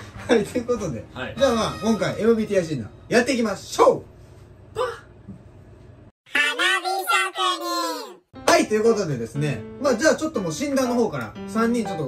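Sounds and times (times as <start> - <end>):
person exclaiming: 6.3 - 8.2.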